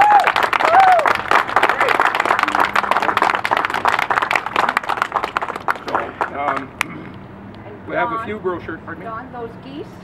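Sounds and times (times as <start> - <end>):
people clapping: 0.0 - 6.9.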